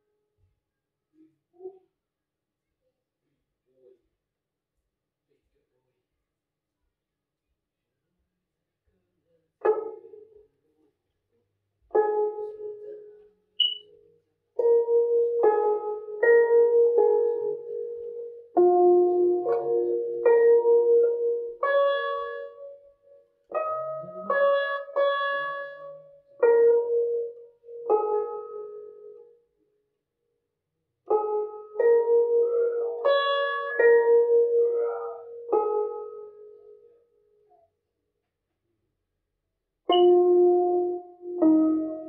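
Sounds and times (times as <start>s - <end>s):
zither plucked notes: 9.6s - 10.6s, 11.9s - 29.5s, 31.1s - 37.7s, 39.9s - 42.0s.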